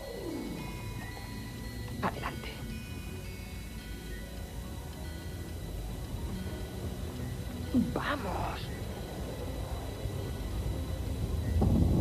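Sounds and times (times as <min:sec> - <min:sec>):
film music with sustained tones: 0:00.0 - 0:12.0
low rumble: 0:05.6 - 0:12.0.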